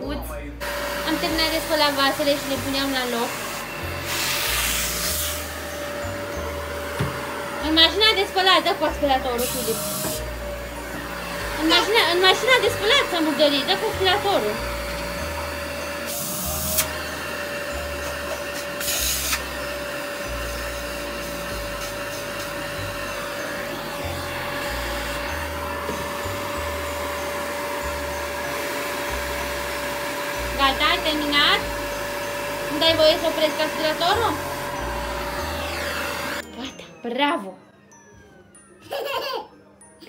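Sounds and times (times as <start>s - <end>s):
vacuum nozzle hiss: 0.6s - 5.7s, 9.3s - 10.4s, 15.9s - 22.9s
vacuum cleaner whine: 0.6s - 36.9s.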